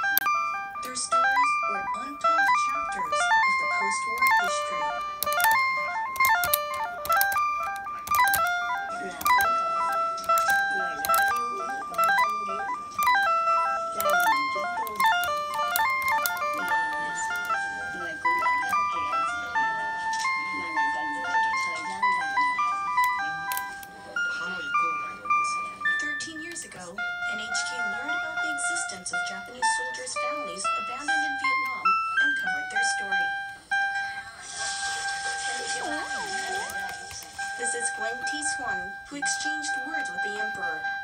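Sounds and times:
synthesizer melody with echo: 0.0 - 41.0.

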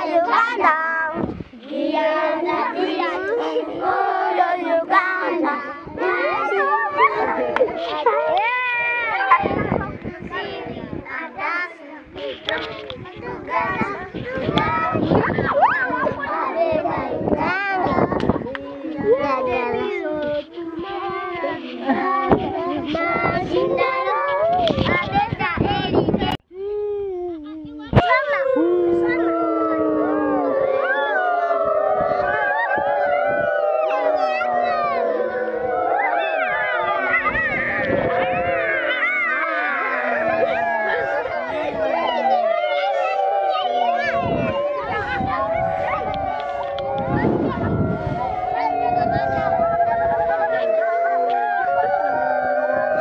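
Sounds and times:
children chattering: 0.0 - 53.0
children singing a note: 28.0 - 53.0.

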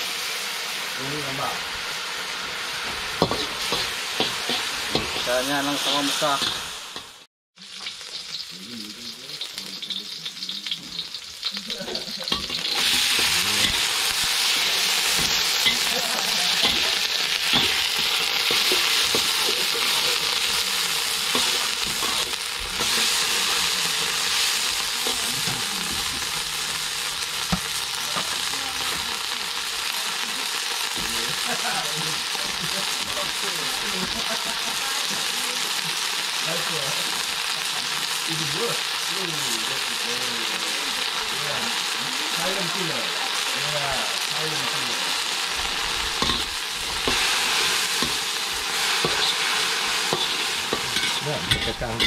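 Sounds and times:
beans sizzling in a wok: 0.0 - 52.0
metal spatula scraping a pan: 9.8 - 26.4, 45.9 - 52.0.

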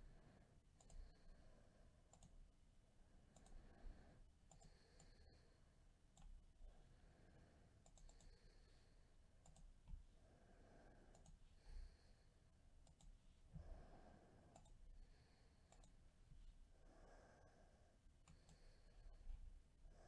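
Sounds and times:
computer mouse clicks: 0.8 - 1.3, 2.1 - 2.4, 3.3 - 3.7, 4.4 - 5.4, 6.1 - 6.4, 7.8 - 8.6, 9.4 - 10.0, 11.1 - 11.4, 12.8 - 13.2, 14.5 - 14.8, 15.6 - 16.0, 18.2 - 18.8.

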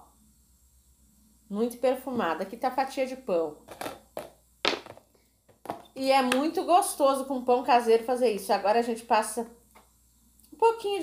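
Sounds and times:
plastic tub and knife knocking on table: 3.7 - 5.8.

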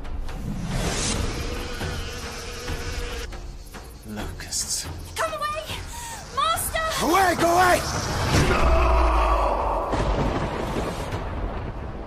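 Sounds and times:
flies buzzing: 0.4 - 8.3.

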